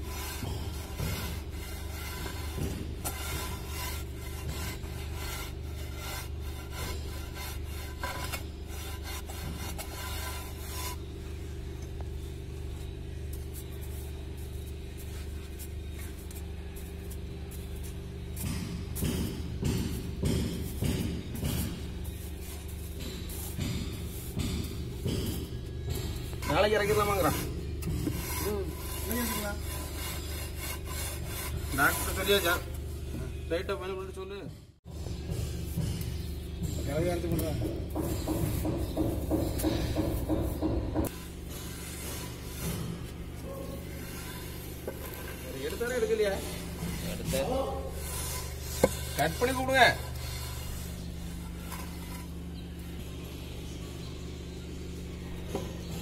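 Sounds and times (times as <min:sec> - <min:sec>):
straight edge scraping screed: 0:00.0 - 0:11.1, 0:26.4 - 0:32.6, 0:41.0 - 0:43.2, 0:43.8 - 0:52.4
steady low hum: 0:00.0 - 0:56.0.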